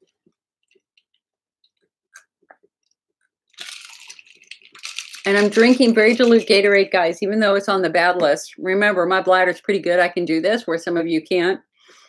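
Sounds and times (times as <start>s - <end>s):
person gulping a drink: 2.1s - 6.4s.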